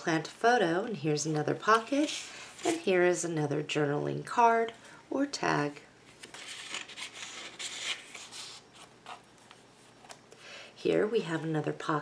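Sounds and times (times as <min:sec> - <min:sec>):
page turning: 0:01.7 - 0:02.9, 0:06.1 - 0:10.2
paper rustling and sliding: 0:01.7 - 0:02.9, 0:06.1 - 0:10.2.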